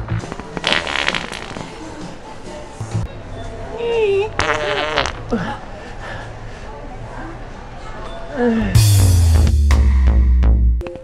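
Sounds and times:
fart toy buzzing: 0.0 - 1.8, 4.4 - 5.3.

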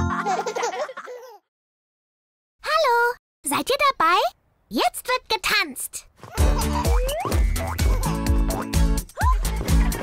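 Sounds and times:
cartoon children laughing: 0.0 - 1.5, 6.2 - 8.3, 9.1 - 10.0.

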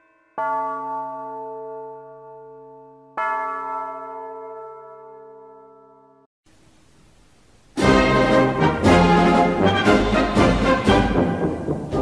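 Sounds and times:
large bell ringing: 0.0 - 6.2.

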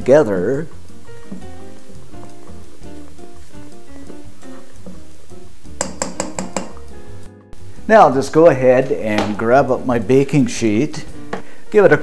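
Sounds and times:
background music: 0.0 - 12.0
spatula clinking on metal bowl: 5.8 - 6.9.

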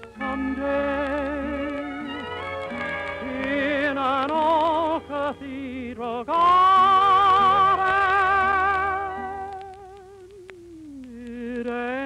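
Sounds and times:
tenor voice singing with vibrato: 0.0 - 12.0.

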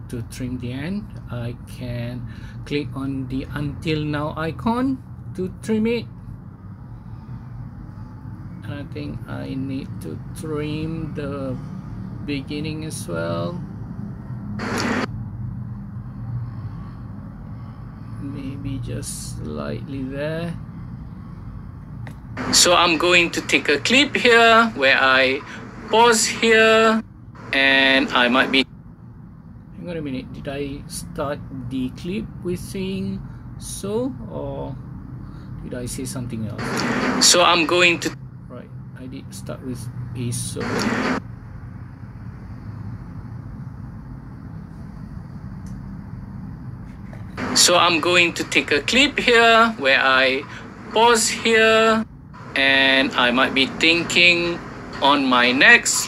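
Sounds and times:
low hum and rumble: 0.0 - 56.0.

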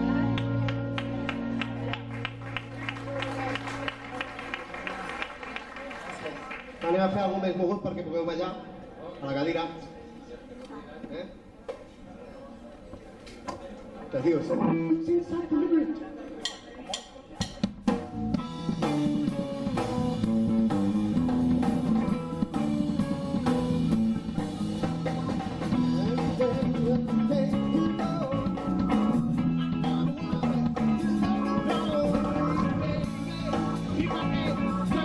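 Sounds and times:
live band music: 0.0 - 5.6, 16.9 - 35.0.

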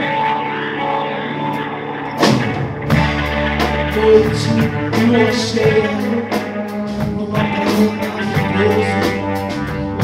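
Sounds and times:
rock band droning chord: 0.0 - 10.0.

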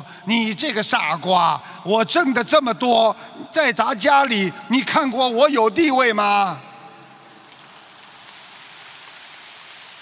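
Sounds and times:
large audience applauding: 7.4 - 10.0.

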